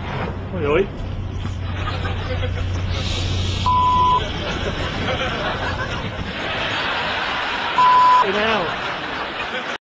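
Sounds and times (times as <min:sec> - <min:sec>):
car engine running under load: 0:00.0 - 0:06.4
short high beep: 0:03.6 - 0:04.2, 0:07.8 - 0:08.2.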